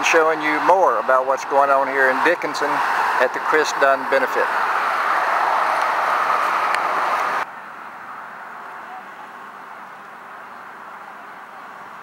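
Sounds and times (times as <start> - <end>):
loud outdoor hiss: 1.2 - 12.0.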